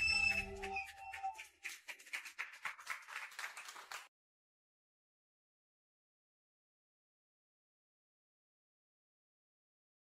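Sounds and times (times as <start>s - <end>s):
applause: 0.0s - 4.1s.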